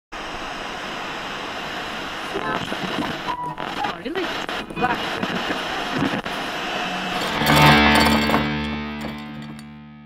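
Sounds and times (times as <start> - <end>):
radio static hiss: 0.2 - 7.2
snatches of voices: 2.3 - 6.6.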